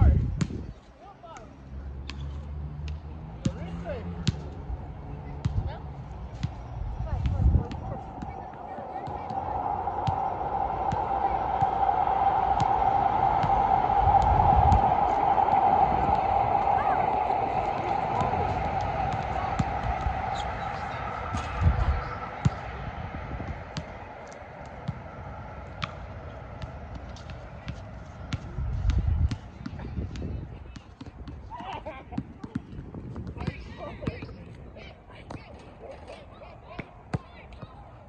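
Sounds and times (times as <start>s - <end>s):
steady outdoor drone: 1.6s - 32.1s.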